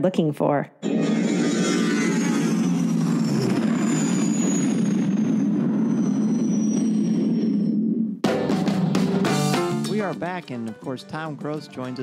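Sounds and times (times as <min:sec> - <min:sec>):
high whine falling in pitch: 0:00.8 - 0:09.9.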